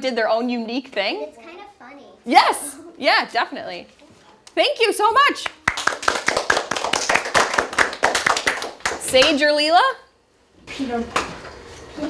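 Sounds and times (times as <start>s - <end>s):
people clapping: 5.4s - 9.4s.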